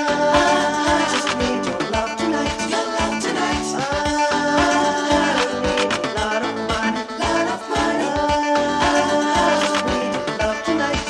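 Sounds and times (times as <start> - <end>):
funk music: 0.0 - 11.0.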